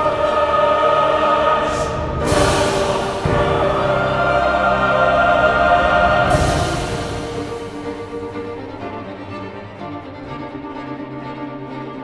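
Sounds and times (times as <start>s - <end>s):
choir singing held chord: 0.0s - 9.0s.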